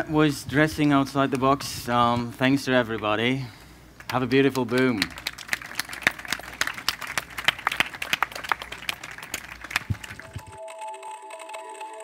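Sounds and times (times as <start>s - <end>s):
small audience applauding: 4.0s - 12.0s.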